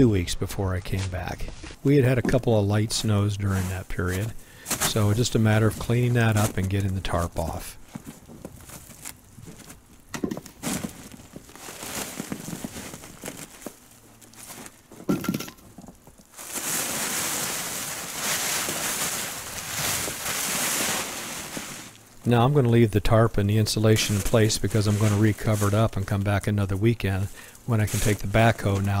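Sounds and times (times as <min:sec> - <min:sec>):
plastic tarp dragged rustling: 0:10.6 - 0:14.8, 0:16.3 - 0:22.1, 0:23.6 - 0:29.0.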